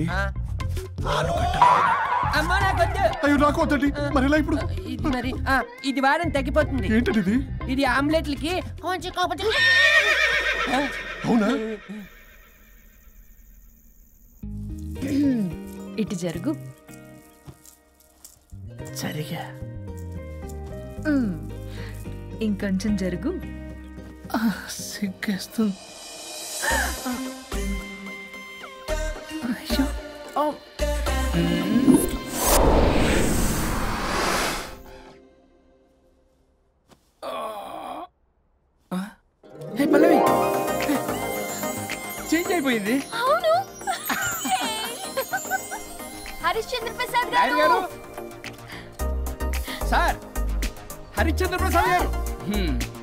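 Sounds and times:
person moaning: 37.2s - 38.1s.

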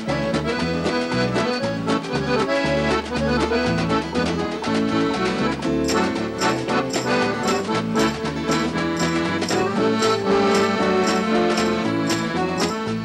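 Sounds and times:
accordion: 0.0s - 13.0s
bass: 0.0s - 13.0s
guitar: 0.0s - 13.0s
percussion strokes: 0.0s - 13.0s.

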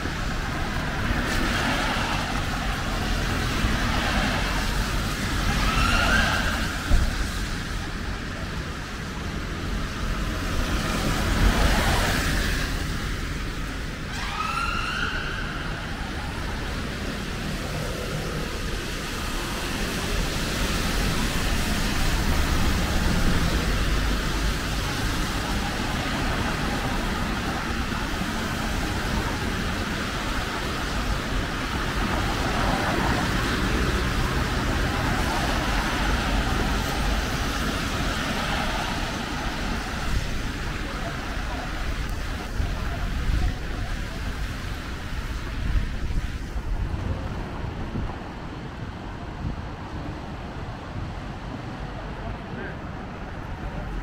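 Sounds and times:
cars passing on wet street: 0.0s - 54.0s.

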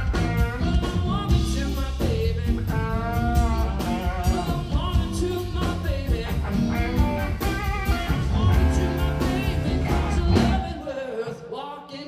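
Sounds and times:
drum kit steady beat: 0.0s - 10.8s
electric guitars: 0.0s - 10.8s
bass guitar: 0.0s - 10.9s
man singing: 0.0s - 12.0s.

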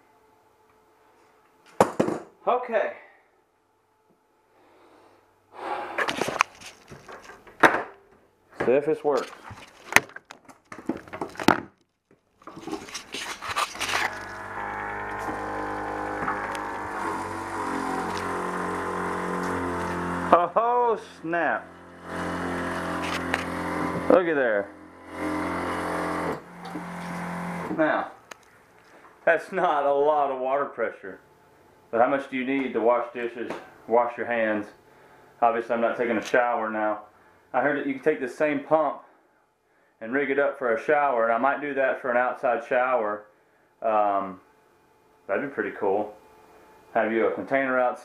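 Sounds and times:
water pump humming: 12.4s - 28.2s
faint steady hum: 12.4s - 48.0s
water flowing into sink: 13.8s - 19.0s.

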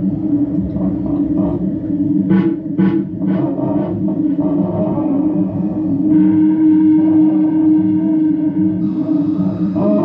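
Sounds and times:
experimental drone music: 0.0s - 10.0s.

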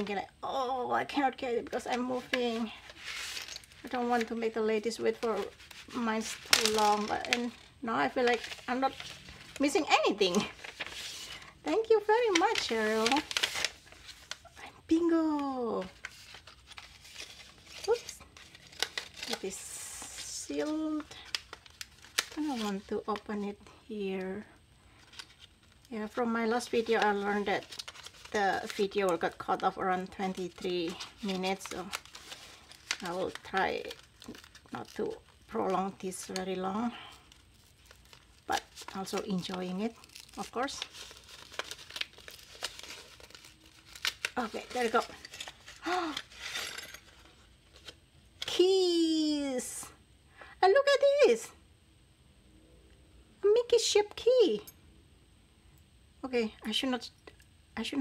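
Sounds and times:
paper rustling and ticking: 1.6s - 14.6s, 15.4s - 23.4s, 25.0s - 48.0s.

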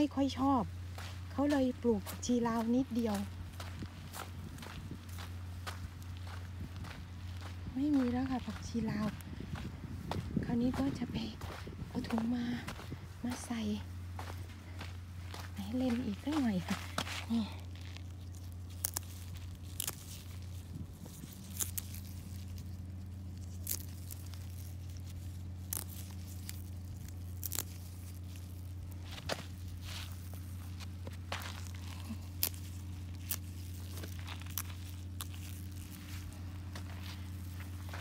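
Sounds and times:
footsteps crunching on sandy soil: 0.0s - 38.0s
steady low hum: 0.0s - 38.0s
plant stems snapping: 17.6s - 37.7s.

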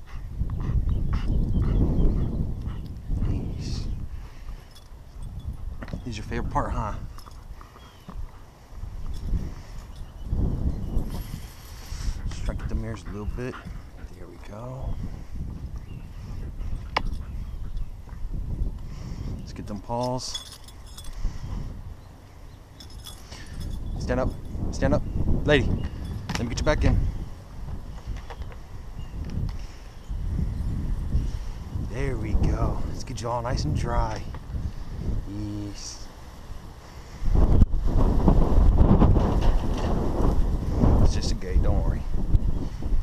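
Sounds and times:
low microphone rumble: 0.0s - 7.2s, 8.8s - 19.5s
wind buffeting microphone: 0.0s - 43.0s
light metallic jingle: 4.6s - 8.0s, 9.0s - 10.2s, 16.7s - 17.9s, 19.8s - 21.2s, 22.7s - 24.6s.

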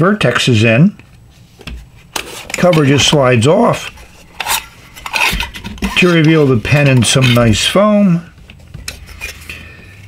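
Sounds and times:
sliding lid scraping off a box: 3.7s - 7.7s.

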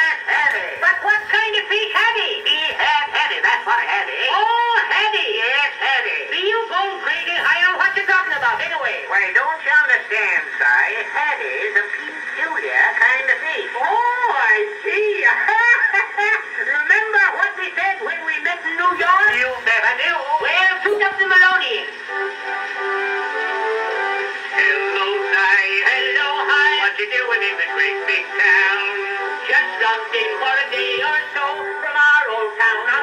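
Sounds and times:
men speaking on old phonograph: 0.0s - 33.0s.

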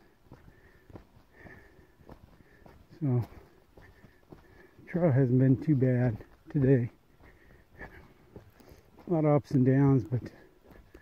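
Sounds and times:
footsteps on dirt trail: 0.0s - 11.0s.

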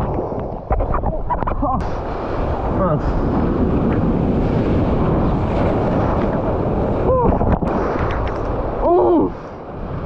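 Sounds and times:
surf washing up sand: 0.0s - 10.0s
wind buffeting microphone: 0.0s - 10.0s.

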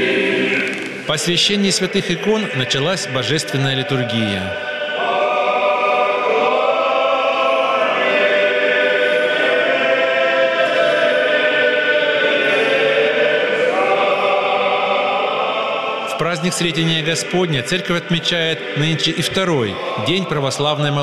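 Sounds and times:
choir chanting a cappella: 0.0s - 21.0s.

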